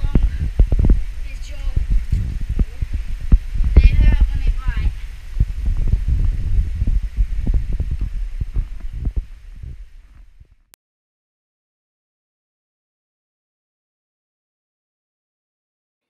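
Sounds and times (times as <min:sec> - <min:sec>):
dull thumps on microphone: 0:00.0 - 0:01.0, 0:05.4 - 0:10.5
low rumbling: 0:00.0 - 0:10.8.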